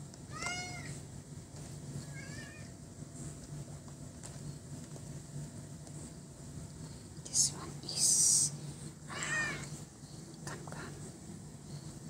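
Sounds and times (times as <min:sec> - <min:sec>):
cat meowing: 0:00.3 - 0:01.0, 0:02.1 - 0:02.7, 0:09.1 - 0:09.7
faint higher cat call: 0:09.1 - 0:09.7.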